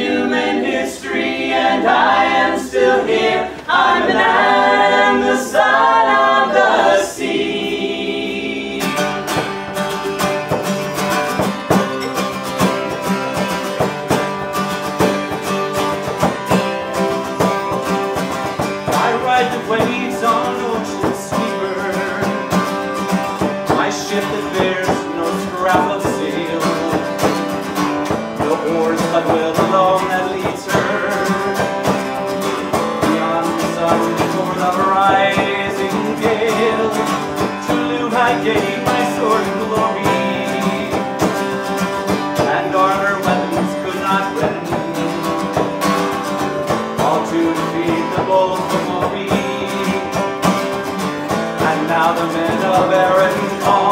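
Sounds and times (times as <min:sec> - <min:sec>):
vocal harmony chord: 0:00.0 - 0:09.3
acoustic guitar strumming: 0:00.0 - 0:53.9
frame drum beating: 0:09.0 - 0:53.9.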